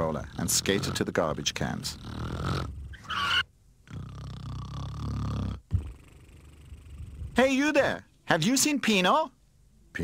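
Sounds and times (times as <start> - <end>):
cartoon snoring: 0.0 - 3.0, 3.8 - 7.4.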